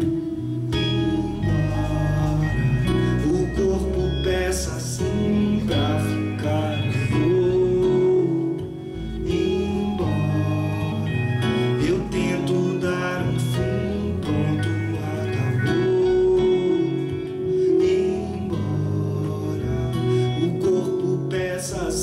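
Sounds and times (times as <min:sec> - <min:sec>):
acoustic guitar strumming: 0:00.0 - 0:22.0
electric bass: 0:00.0 - 0:22.0
electric guitar melody: 0:00.0 - 0:22.0.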